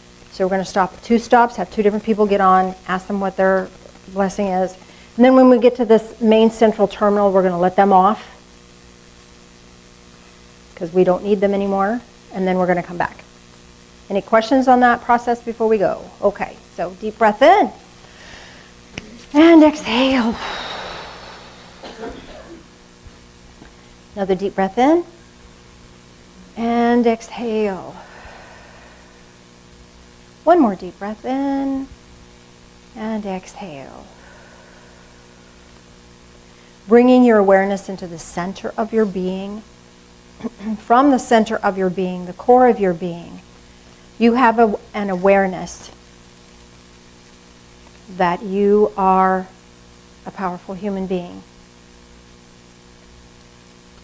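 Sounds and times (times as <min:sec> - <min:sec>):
low electrical hum: 0:00.0 - 0:54.0
woman speaking: 0:00.3 - 0:08.3, 0:10.8 - 0:13.2, 0:14.1 - 0:17.9, 0:19.2 - 0:20.8, 0:24.2 - 0:25.2, 0:26.6 - 0:28.0, 0:30.5 - 0:31.9, 0:33.0 - 0:34.2, 0:36.9 - 0:39.7, 0:40.4 - 0:43.4, 0:44.2 - 0:46.0, 0:48.1 - 0:49.6, 0:50.3 - 0:51.5.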